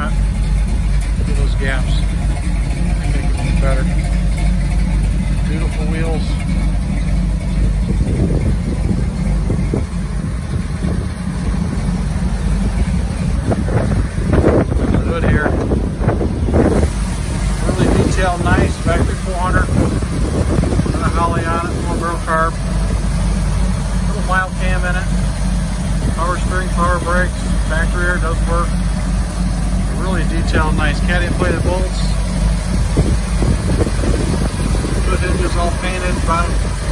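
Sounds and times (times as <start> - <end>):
car engine idling: 0.0 - 36.9.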